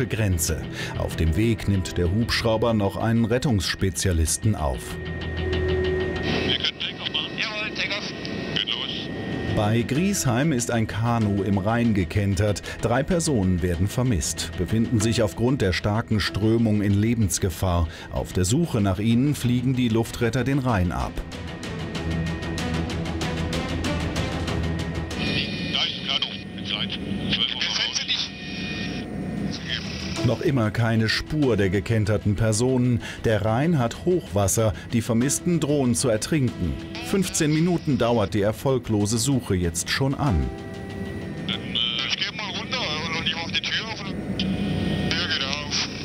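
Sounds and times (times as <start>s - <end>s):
background music: 0.0s - 46.0s
helicopter engine and rotor noise: 0.0s - 46.0s
pilot speaking over radio intercom: 6.3s - 12.3s, 25.2s - 32.8s, 35.7s - 40.5s, 41.5s - 46.0s.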